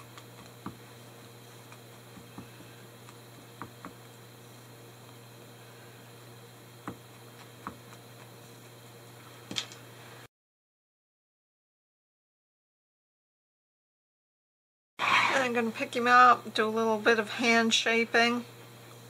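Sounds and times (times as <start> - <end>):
steady low hum: 0.0 - 10.3.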